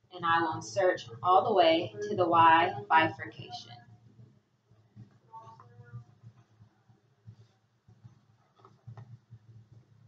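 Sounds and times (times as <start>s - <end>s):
low steady hum: 0.0s - 4.2s
faint rustles and soft ticks: 3.6s - 10.0s.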